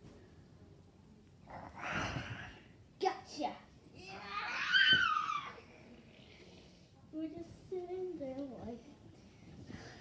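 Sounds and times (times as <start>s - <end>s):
child squealing: 4.1s - 5.6s.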